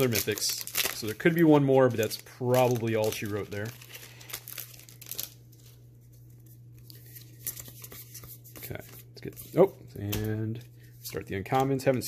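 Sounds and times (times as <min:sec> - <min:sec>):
foil wrapper crinkling and tearing: 0:00.0 - 0:05.7.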